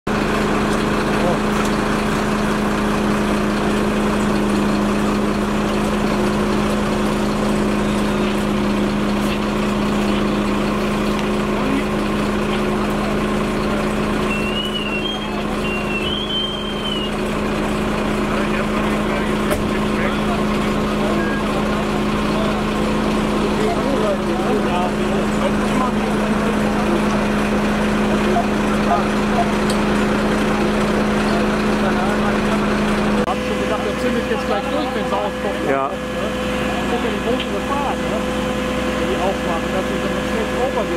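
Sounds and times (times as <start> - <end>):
diesel engine running: 0.0 - 40.9.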